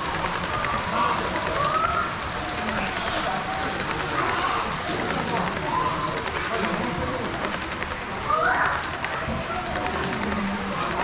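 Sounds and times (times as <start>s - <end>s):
model train running on track: 0.0s - 11.0s
people talking: 0.0s - 11.0s.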